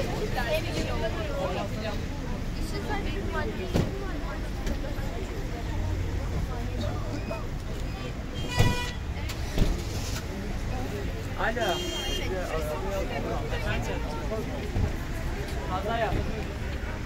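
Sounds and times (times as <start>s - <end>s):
crowd talking: 0.0s - 17.0s
idling vehicles and traffic: 0.0s - 17.0s.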